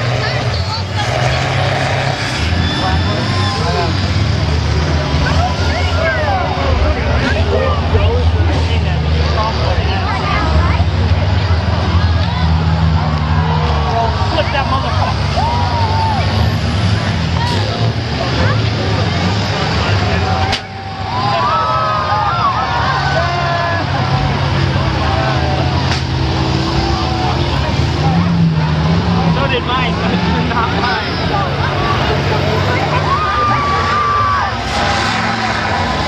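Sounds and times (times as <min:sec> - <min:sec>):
bus engines rumbling: 0:00.0 - 0:36.0
people shouting: 0:15.2 - 0:16.6, 0:19.8 - 0:28.4, 0:30.9 - 0:36.0.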